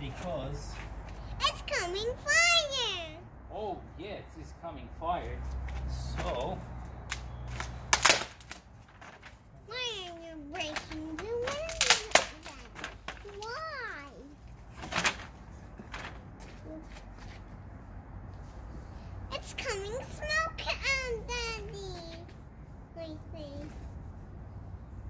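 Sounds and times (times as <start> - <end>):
child calling out: 1.4 - 3.3, 9.7 - 14.4
wooden planks being handled: 5.6 - 17.5
bonfire wood cracking: 6.8 - 9.4, 10.6 - 16.3.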